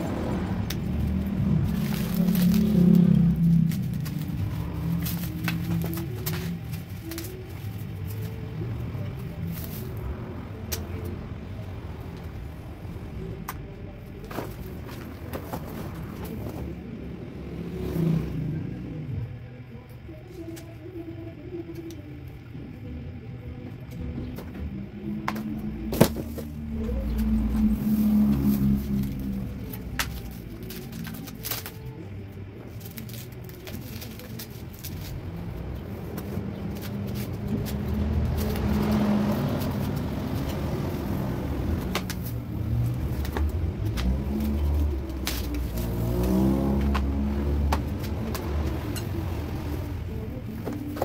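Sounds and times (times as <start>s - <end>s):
vehicle engine passing by: 0.0s - 6.1s, 15.6s - 19.3s, 25.6s - 30.8s, 35.0s - 50.6s.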